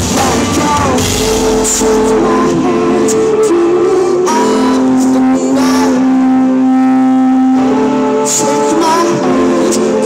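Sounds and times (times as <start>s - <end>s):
rock band holding a long note: 0.0s - 10.0s.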